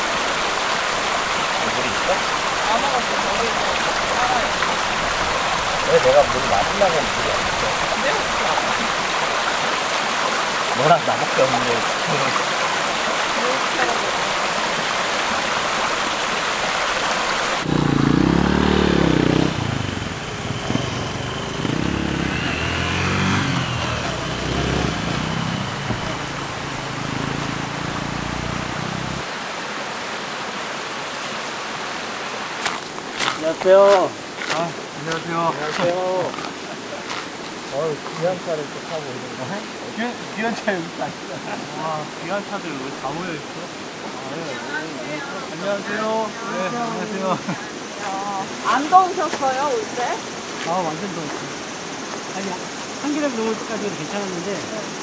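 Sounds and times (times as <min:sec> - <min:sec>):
creek water running over rocks: 0:00.0 - 0:55.0
vehicle engine running: 0:17.6 - 0:29.3.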